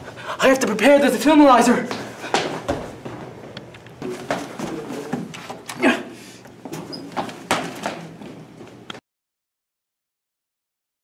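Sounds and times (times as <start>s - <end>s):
knocks and thuds of person moving: 1.9s - 5.6s, 6.6s - 8.1s.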